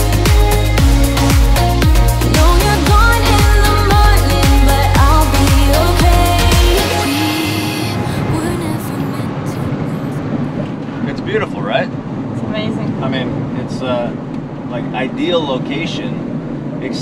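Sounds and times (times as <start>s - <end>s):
road and engine noise in cab: 0.0s - 17.0s
man talking: 11.0s - 11.9s, 13.0s - 16.2s, 16.8s - 17.0s.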